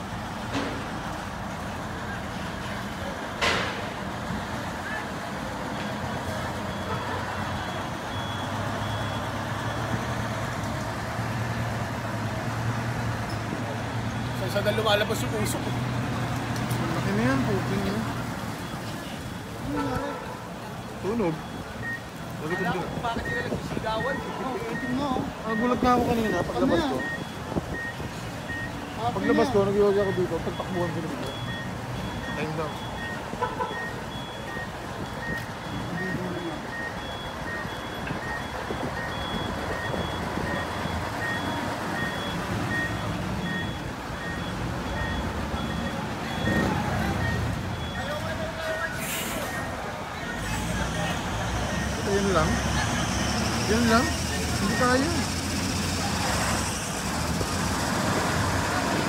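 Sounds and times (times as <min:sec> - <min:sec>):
outdoor noise: 0:00.0 - 0:59.0
vehicle reversing alarm beeps: 0:05.6 - 0:12.5, 0:13.1 - 0:59.0.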